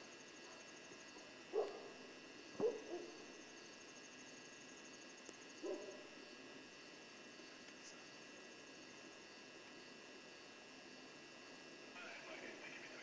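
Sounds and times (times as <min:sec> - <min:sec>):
faint high-pitched drone: 0:00.0 - 0:13.0.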